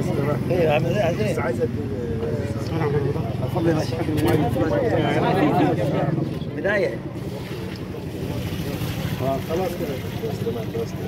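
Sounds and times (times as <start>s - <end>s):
faint voices: 0.0s - 11.0s
water splashing onto soil: 7.2s - 10.6s.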